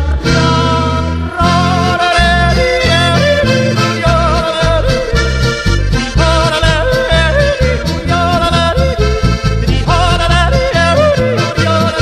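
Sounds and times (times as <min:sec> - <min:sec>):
polka band music: 0:00.0 - 0:12.0.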